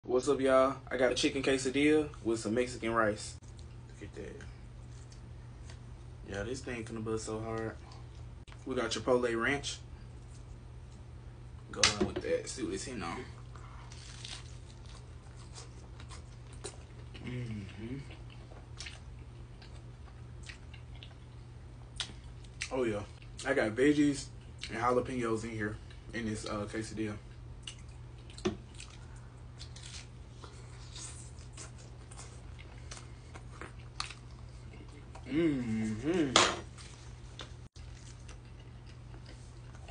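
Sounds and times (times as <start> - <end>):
steady low hum: 0.0 - 39.9
person biting and chewing: 13.4 - 21.2, 27.6 - 35.3
chewing clicks and crunches: 18.0 - 21.3.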